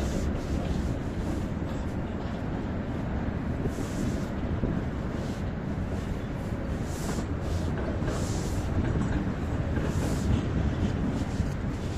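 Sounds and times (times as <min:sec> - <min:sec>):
tram rumbling on tracks: 0:00.0 - 0:11.9.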